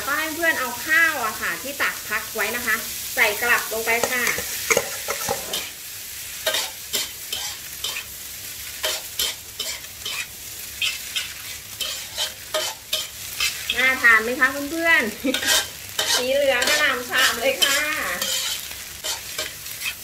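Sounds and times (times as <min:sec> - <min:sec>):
frying sizzle: 0:00.0 - 0:20.0
spatula scraping a wok: 0:03.0 - 0:20.0.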